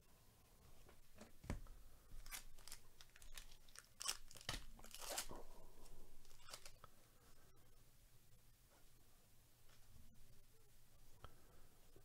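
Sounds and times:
cards scraping and rustling: 2.2 - 5.4, 6.2 - 6.8.

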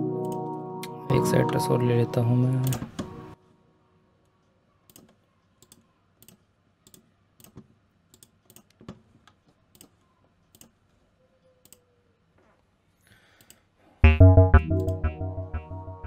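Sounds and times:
computer mouse clicks: 4.9 - 10.8, 11.5 - 11.9.

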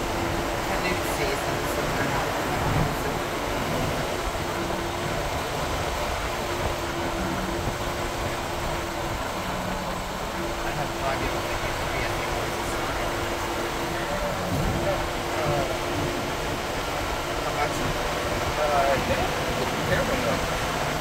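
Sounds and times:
road and engine noise inside car: 0.0 - 21.0.

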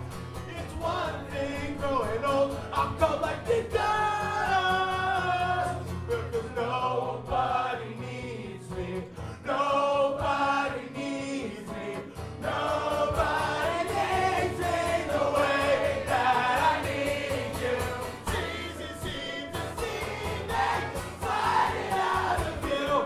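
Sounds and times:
strummed acoustic guitar: 0.0 - 23.0
man singing loudly: 0.5 - 7.0, 18.3 - 19.8
voices singing along: 0.7 - 23.0.

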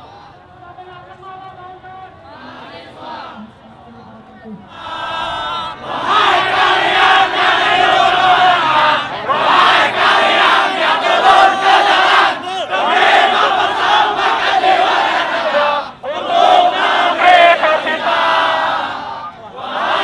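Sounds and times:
crowd shouting: 4.7 - 20.0.

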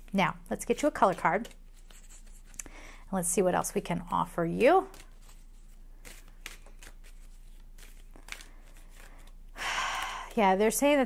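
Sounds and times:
cards clicking and rustling: 0.6 - 2.6, 4.0 - 10.5
person breathing: 2.6 - 3.1, 8.4 - 10.4.

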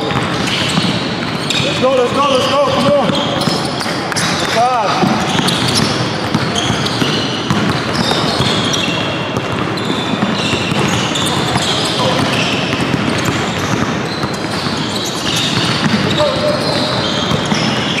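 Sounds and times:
sneakers squeaking on court: 0.0 - 18.0
basketball dribbling on hardwood: 2.7 - 18.0.

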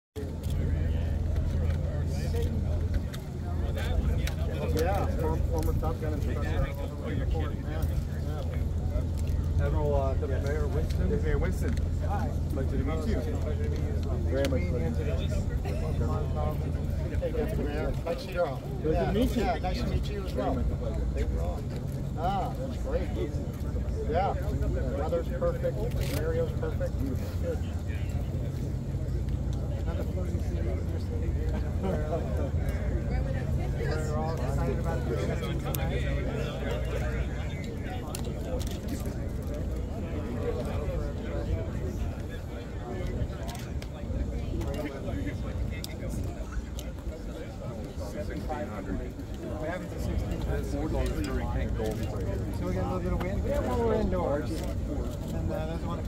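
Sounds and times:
faint conversation: 0.2 - 56.0
faint voices talking: 0.2 - 56.0.

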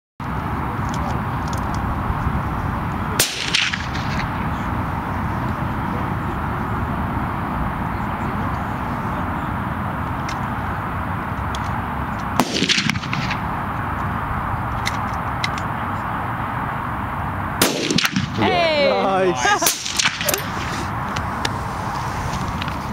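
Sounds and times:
steady background hiss: 0.2 - 22.9
steady background noise: 0.2 - 22.9
rifle shot: 3.2 - 4.4, 12.4 - 13.5, 17.6 - 18.4, 19.6 - 20.7.

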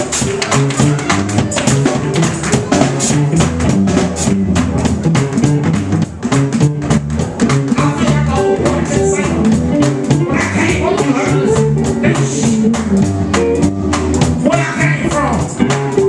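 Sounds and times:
bass line: 0.0 - 16.0.

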